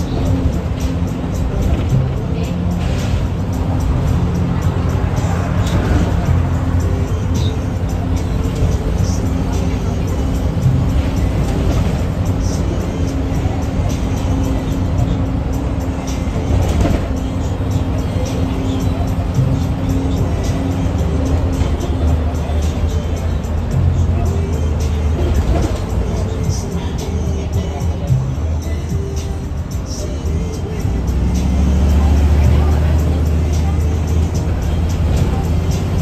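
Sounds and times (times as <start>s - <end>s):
bus engine and road rumble: 0.0s - 36.0s
music playing: 0.0s - 36.0s.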